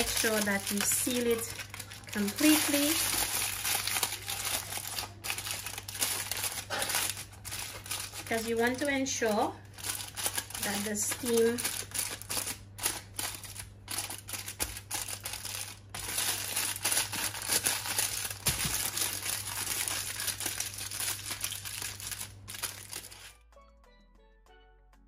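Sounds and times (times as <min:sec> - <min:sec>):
aluminium foil crinkling: 0:00.0 - 0:23.4.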